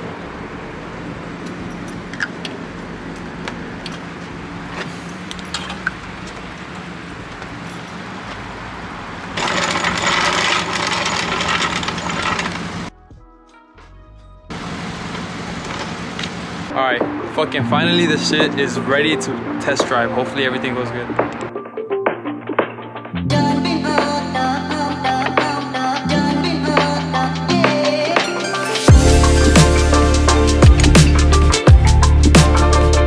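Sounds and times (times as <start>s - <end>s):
car engine idling: 14.5s - 16.7s.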